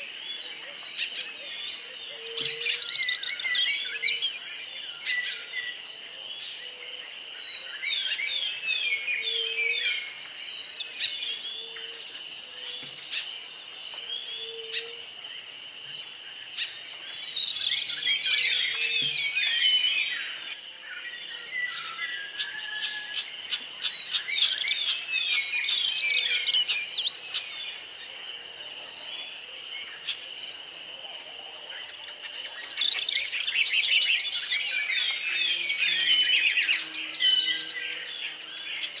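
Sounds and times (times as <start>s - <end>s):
birds chirping and singing: 0.0s - 39.0s.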